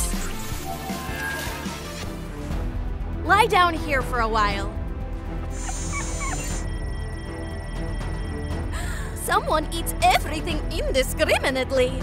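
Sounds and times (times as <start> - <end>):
background music: 0.0 - 12.0
high hiss: 5.5 - 6.6.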